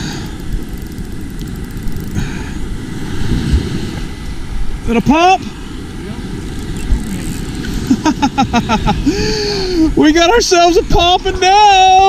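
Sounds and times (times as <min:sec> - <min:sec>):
wind and surf rumble: 0:00.0 - 0:12.0
man chuckling: 0:07.8 - 0:09.9.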